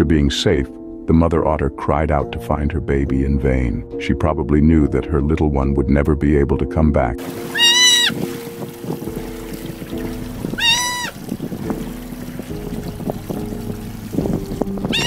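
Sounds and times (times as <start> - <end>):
background music: 0.0 - 15.0
sea otter screaming: 7.3 - 8.3, 10.4 - 11.2.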